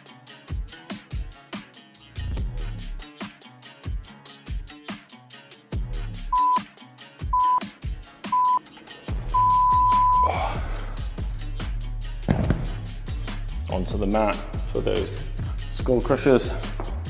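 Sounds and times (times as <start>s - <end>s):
background music with a beat: 0.0s - 17.0s
timer beeps: 6.3s - 6.6s, 7.3s - 7.6s, 8.3s - 8.6s, 9.3s - 10.3s.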